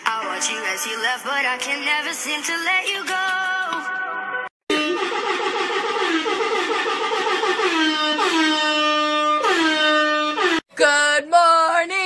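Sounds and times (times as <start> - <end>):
loud horn-like note: 4.7 - 10.6.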